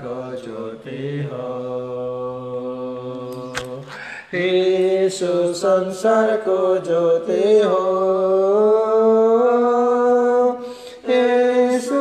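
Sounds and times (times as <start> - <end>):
man singing unaccompanied chant: 0.0 - 12.0.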